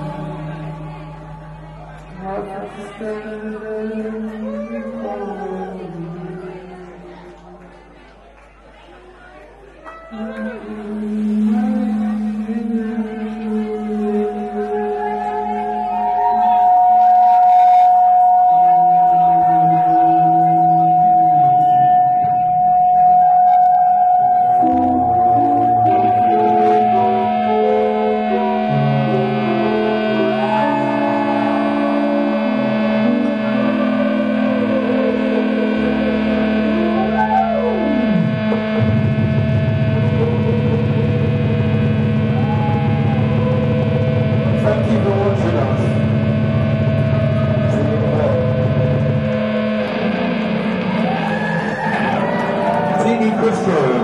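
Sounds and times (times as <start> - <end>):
experimental drone music: 9.9 - 54.0.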